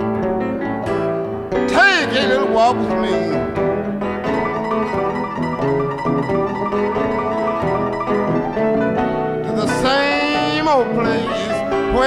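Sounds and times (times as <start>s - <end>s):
blues accompaniment: 0.0s - 12.0s
plucked guitar notes: 0.0s - 12.0s.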